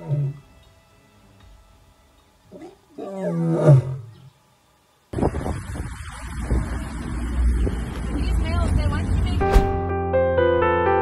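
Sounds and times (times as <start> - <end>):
lioness roaring: 0.0 - 0.4, 2.5 - 4.2
steady low rumble: 5.2 - 10.0.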